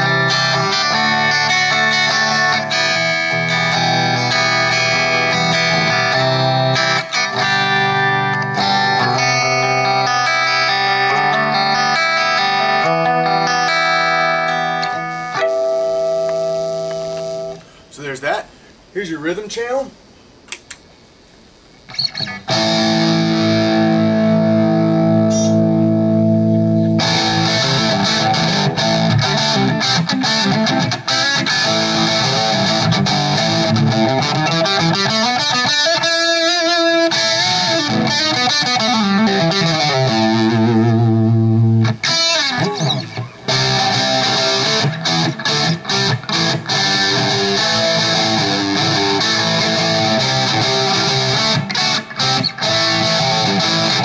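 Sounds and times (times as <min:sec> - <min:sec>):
distorted electric guitar: 0:00.0 - 0:17.8, 0:21.8 - 0:54.0.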